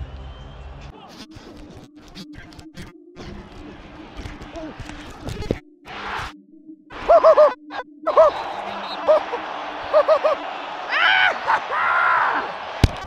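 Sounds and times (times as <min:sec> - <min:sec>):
stadium crowd noise: 0:00.0 - 0:01.2, 0:08.1 - 0:13.0
men shouting calls: 0:08.1 - 0:12.6.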